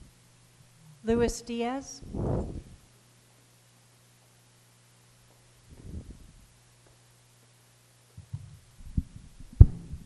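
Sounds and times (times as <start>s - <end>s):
low electrical hum: 0.0s - 10.0s
microphone handling thumps: 2.0s - 2.8s, 5.7s - 6.4s.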